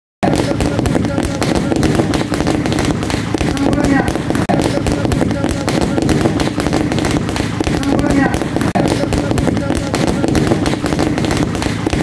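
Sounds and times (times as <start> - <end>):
firecrackers going off: 0.2 - 12.0.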